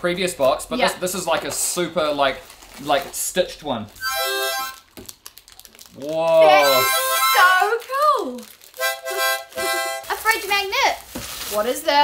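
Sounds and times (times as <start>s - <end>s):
harmonica chord: 4.0s - 4.8s, 6.6s - 7.6s, 8.8s - 10.1s.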